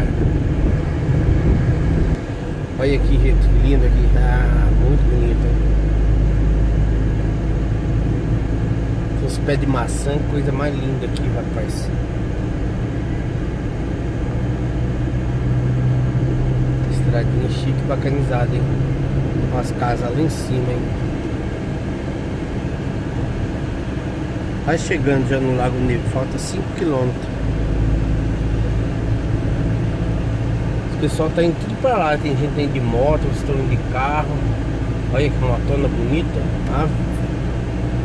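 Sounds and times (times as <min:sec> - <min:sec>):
car engine hum: 0:00.0 - 0:38.0
road noise: 0:00.0 - 0:38.0.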